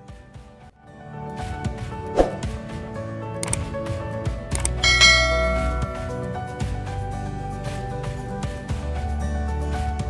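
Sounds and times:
background music: 0.0 - 10.0
clicks: 3.4 - 3.7
bright bell ding: 4.8 - 6.6.

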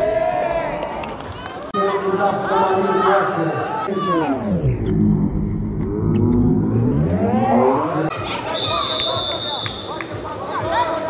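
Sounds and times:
voice sliding in pitch: 3.9 - 8.1
steady high whistle: 8.4 - 10.0.

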